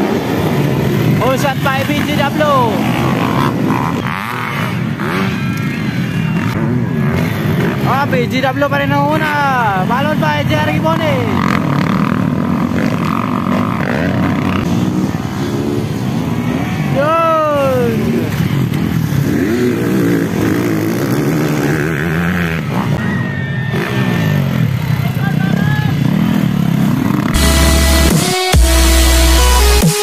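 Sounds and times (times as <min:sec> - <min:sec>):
dirt bike engines revving: 0:00.0 - 0:29.8.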